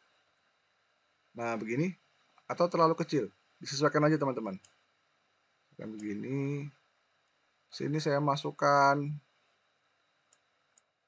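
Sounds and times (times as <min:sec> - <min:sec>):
faint computer mouse clicks: 0:10.3 - 0:11.0.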